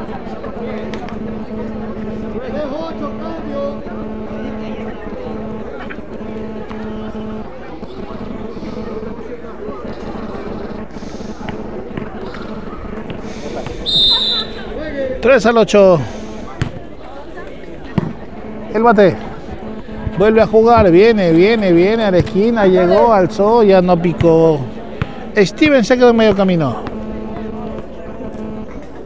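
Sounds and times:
people talking: 0.0s - 29.0s
steady low hum: 0.0s - 29.0s.

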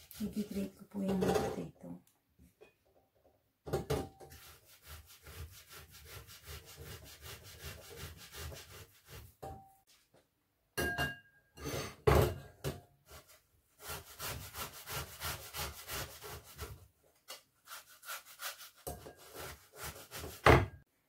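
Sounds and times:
potato grating on hand grater: 0.0s - 0.9s, 4.3s - 9.4s, 13.1s - 16.8s, 17.6s - 20.6s.

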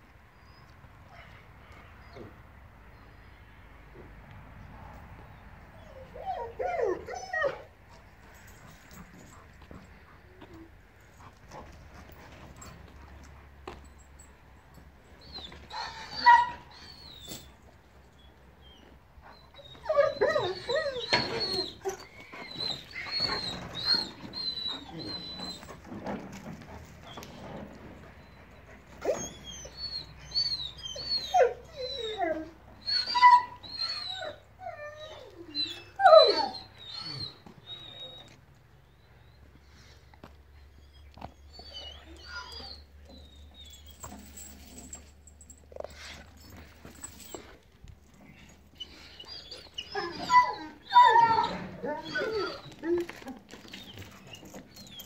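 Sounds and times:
dog whining and whimpering: 5.8s - 7.7s, 15.2s - 17.6s, 18.2s - 38.4s, 40.6s - 55.0s.

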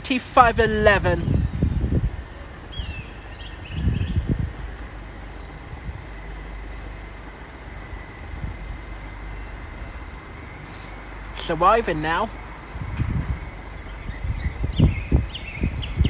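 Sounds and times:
faint high whine: 0.0s - 16.0s
train low rumble: 0.0s - 16.0s.

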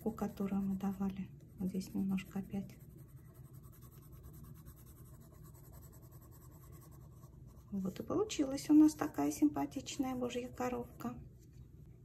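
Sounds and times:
pencil scratching on paper: 0.0s - 8.0s.

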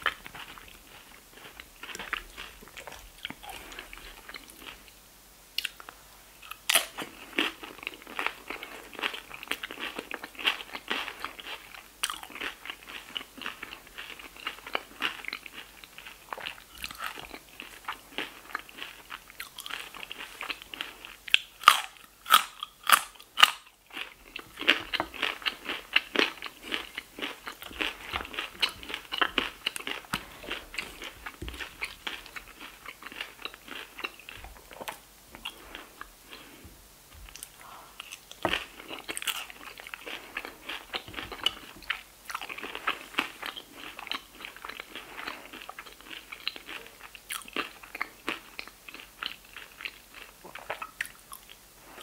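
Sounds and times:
crunchy chewing of chips: 0.0s - 5.0s, 5.6s - 52.0s
carrot stick crunching: 5.6s - 36.6s, 37.3s - 51.5s.

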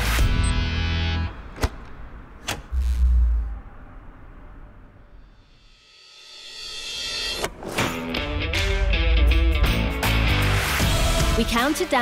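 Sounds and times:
music: 5.7s - 12.0s.

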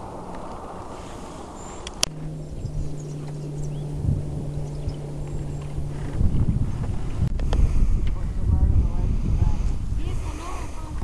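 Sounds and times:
steady low hum: 0.0s - 11.0s
wind buffeting microphone: 0.0s - 11.0s.

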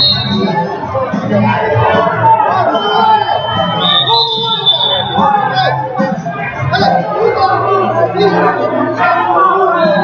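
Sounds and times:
crowd chatter echoing: 0.0s - 10.0s.

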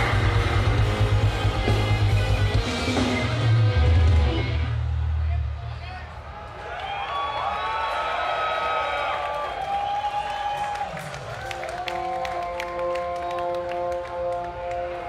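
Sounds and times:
crowd cheering and whistling: 0.0s - 15.0s
crowd clapping: 6.4s - 15.0s.

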